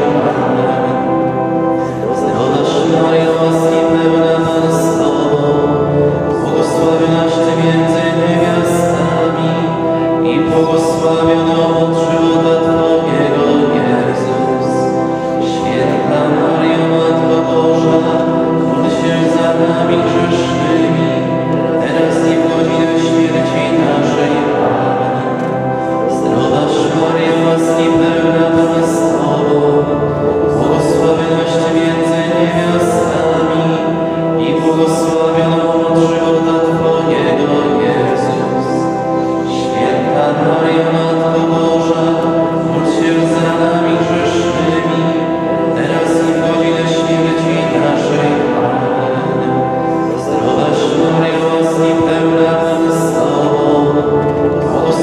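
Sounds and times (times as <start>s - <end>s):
congregation chanting in unison: 0.0s - 55.0s.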